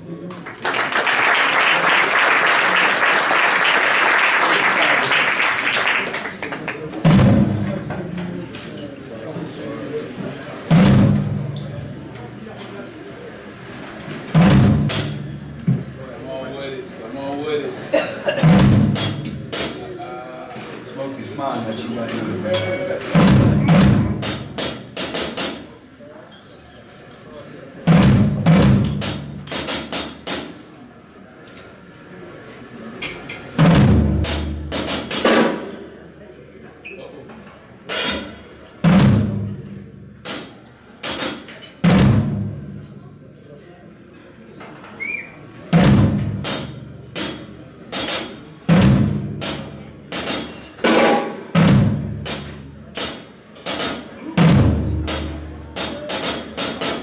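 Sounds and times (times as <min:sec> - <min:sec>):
funk drum kit phrases: 0:06.9 - 0:08.1, 0:10.6 - 0:12.5, 0:13.5 - 0:16.0, 0:17.9 - 0:20.0, 0:22.4 - 0:25.8, 0:27.8 - 0:30.7, 0:33.4 - 0:35.8, 0:37.8 - 0:42.9, 0:45.7 - 0:57.0.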